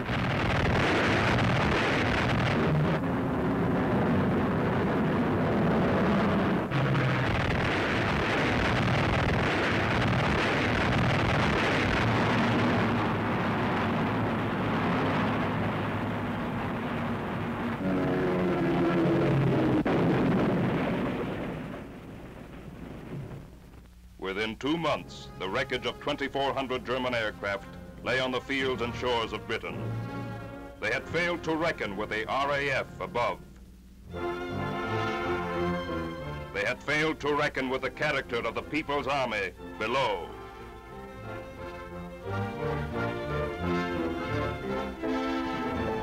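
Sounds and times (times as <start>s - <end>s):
dense rushing noise: 0.0s - 23.9s
aircraft engines droning: 12.5s - 19.9s.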